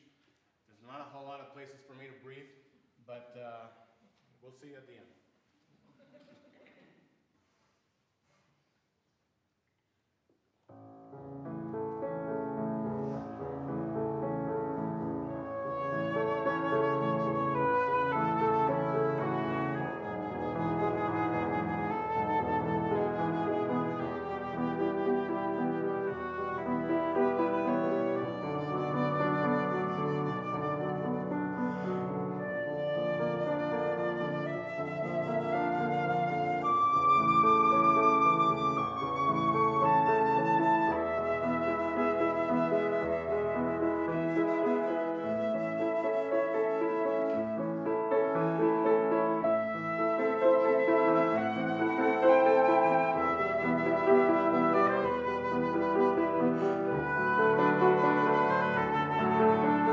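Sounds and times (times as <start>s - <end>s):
piano accompaniment: 10.7s - 59.9s
flute melody: 11.5s - 59.9s.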